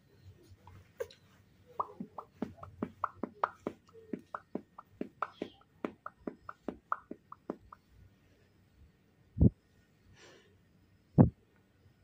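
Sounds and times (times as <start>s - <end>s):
person clucking with mouth: 1.8s - 7.8s.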